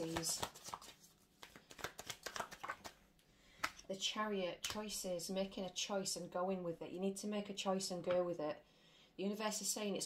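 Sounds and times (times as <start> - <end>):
cards being shuffled: 0.0 - 3.0.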